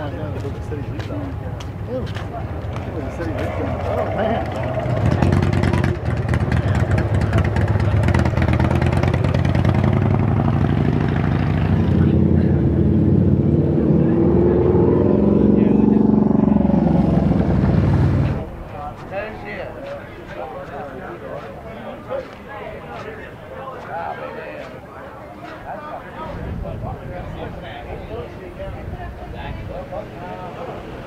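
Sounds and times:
motorcycle engines revving: 0.0s - 18.9s.

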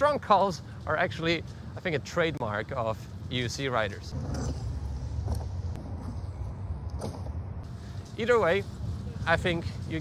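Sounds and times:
tyre rolling over paved path: 4.0s - 6.4s.

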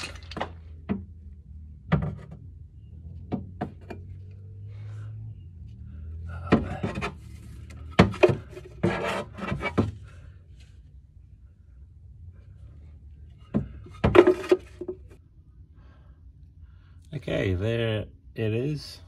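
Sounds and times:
steady low hum: 0.2s - 19.0s
knocks and scraping on metal bracket: 6.4s - 10.1s, 13.4s - 15.2s.

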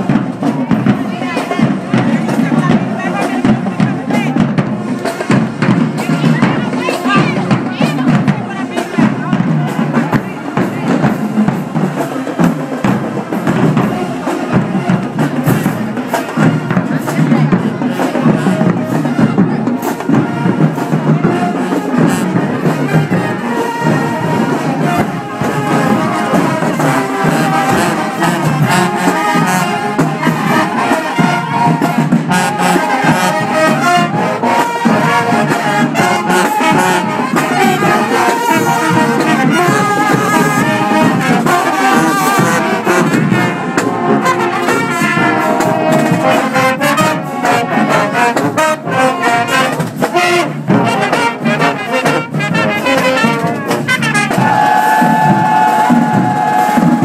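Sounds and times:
brass instruments playing: 0.0s - 57.0s
drumline beat: 0.0s - 57.0s.

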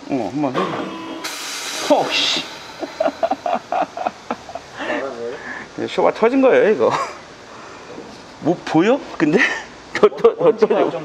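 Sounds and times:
man talking: 0.0s - 0.9s, 1.8s - 2.6s, 4.8s - 7.2s
man chuckling: 2.5s - 5.2s.

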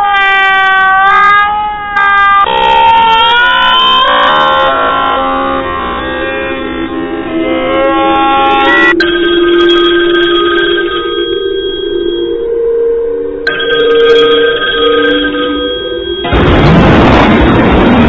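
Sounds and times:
ringing electronic tones: 8.6s - 16.5s.

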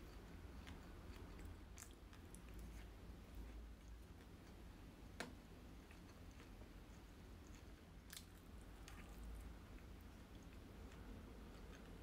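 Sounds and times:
faint mouth eating noises: 0.0s - 4.7s, 5.7s - 12.0s.

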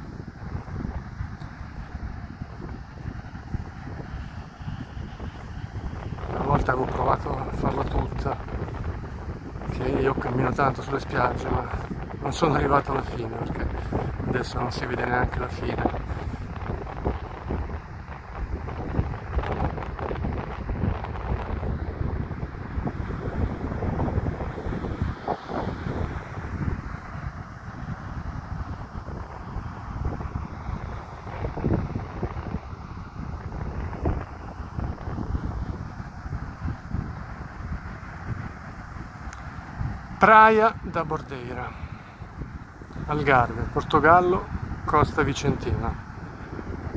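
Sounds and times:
wind buffeting microphone: 0.0s - 46.9s.

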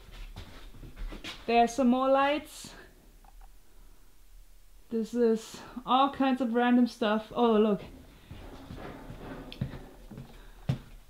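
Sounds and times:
footsteps on wooden floor: 0.0s - 1.5s, 7.8s - 11.0s.

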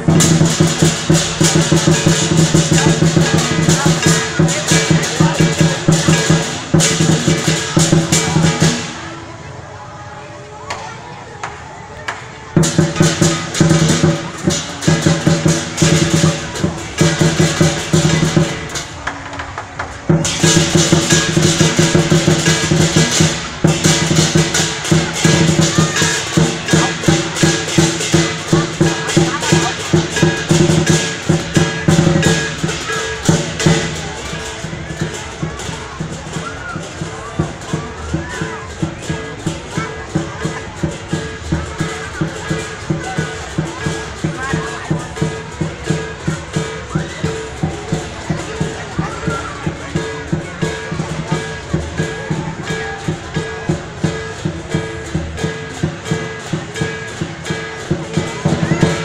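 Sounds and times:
clashing cymbals: 0.0s - 9.3s, 12.6s - 19.2s, 19.8s - 59.0s
drum beaten rapidly: 0.0s - 9.5s, 11.4s - 59.0s.

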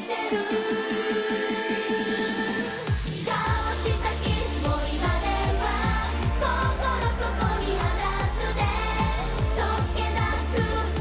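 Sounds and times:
women singing pop song together: 0.0s - 11.0s
band backing with driving beat: 2.8s - 11.0s.

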